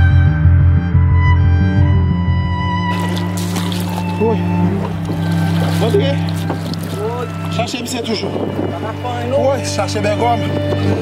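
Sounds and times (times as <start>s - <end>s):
music: 0.0s - 11.0s
boat engine drone: 1.3s - 11.0s.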